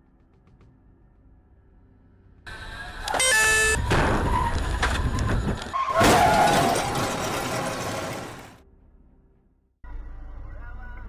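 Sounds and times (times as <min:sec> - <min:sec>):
squealing scraping metal: 0:03.0 - 0:08.3
banging crunching and breaking: 0:03.8 - 0:08.6
car crash impact: 0:03.8 - 0:08.6.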